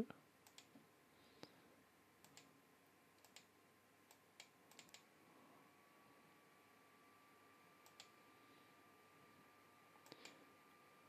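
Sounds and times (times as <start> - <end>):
faint mouse clicks: 0.4 - 0.8, 2.2 - 2.5, 3.2 - 3.5, 4.1 - 5.1, 7.8 - 8.2, 10.0 - 10.4.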